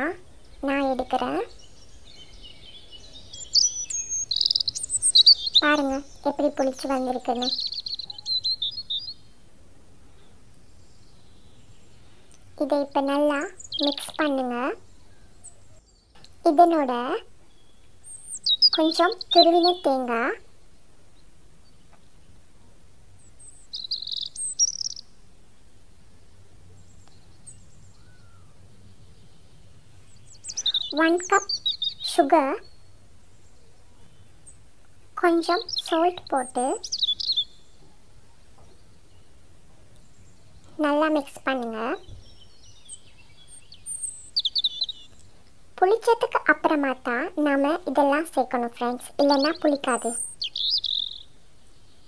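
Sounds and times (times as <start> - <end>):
songbird chirping and trilling: 0.0 - 52.0.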